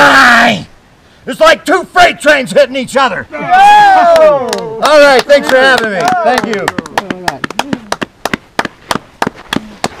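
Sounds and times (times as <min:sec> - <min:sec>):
people clapping sparsely: 0:04.0 - 0:10.0.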